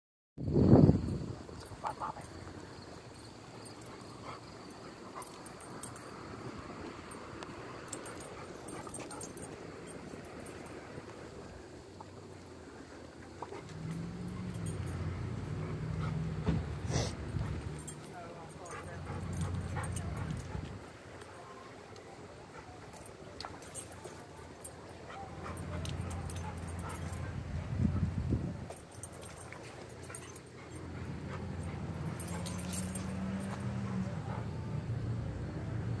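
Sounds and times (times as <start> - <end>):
outdoor background noise: 0.4 - 36.0.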